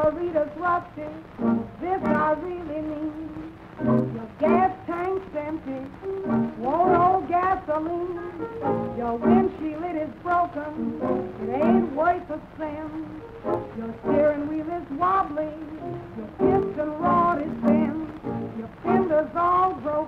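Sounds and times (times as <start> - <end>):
old jazz band recording: 0.0 - 20.0.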